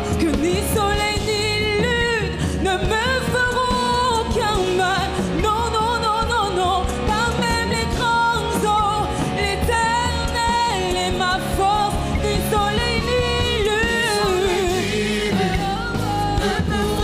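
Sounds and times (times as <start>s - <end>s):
band accompaniment: 0.0s - 17.0s
woman singing: 0.0s - 17.0s.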